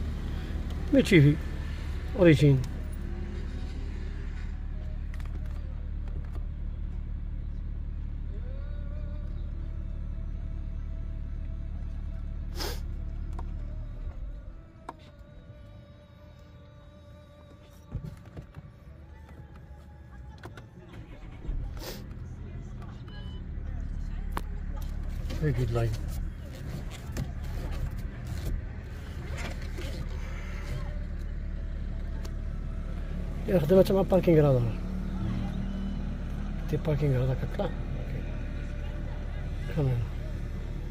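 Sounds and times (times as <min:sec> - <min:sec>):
car engine idling: 0:00.0 - 0:40.9.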